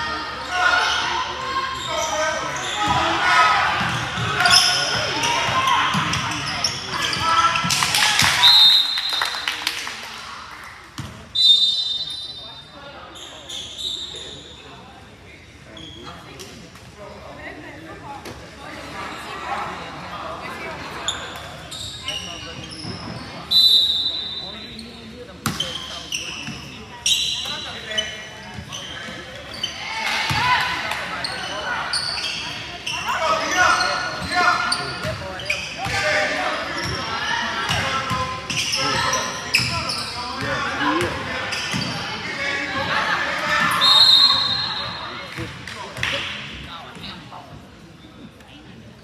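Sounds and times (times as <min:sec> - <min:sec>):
sneaker squeaks: 0:00.4 - 0:03.2, 0:03.8 - 0:07.8, 0:11.0 - 0:15.0, 0:15.7 - 0:17.2, 0:21.0 - 0:42.6, 0:43.4 - 0:46.2
loud high whistle: 0:08.4 - 0:09.4, 0:11.4 - 0:12.6, 0:23.5 - 0:24.6, 0:43.8 - 0:45.1.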